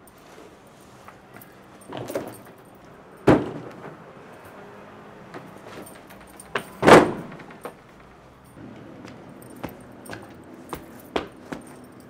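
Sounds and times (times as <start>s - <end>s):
door thudding: 6.8s - 7.6s
footsteps on wooden floor: 8.6s - 11.9s.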